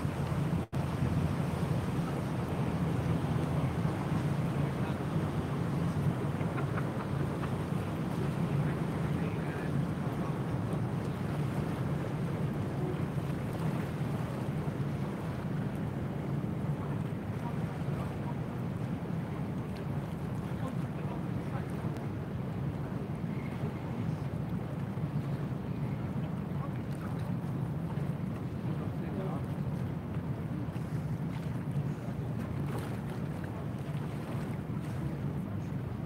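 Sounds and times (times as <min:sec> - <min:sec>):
low outdoor rumble: 0:00.0 - 0:36.0.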